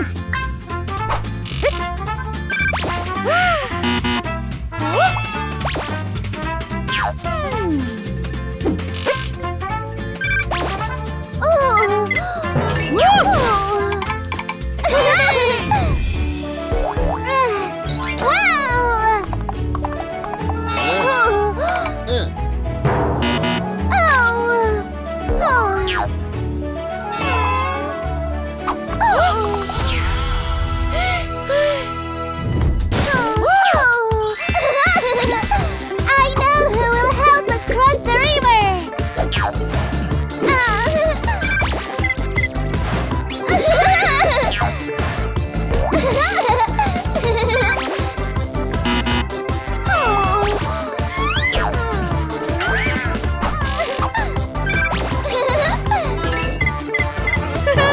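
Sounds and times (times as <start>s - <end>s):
cartoon background music: 0.0s - 57.9s
high wordless character voice: 7.0s - 8.8s, 11.3s - 16.0s, 17.1s - 19.6s, 20.4s - 22.4s, 23.6s - 26.1s, 28.9s - 29.7s, 33.0s - 35.1s, 35.9s - 39.0s, 40.3s - 41.6s, 47.9s - 57.9s
squeaky cartoon voices: 20.5s - 21.5s, 27.0s - 28.0s, 47.7s - 55.3s, 56.0s - 57.9s.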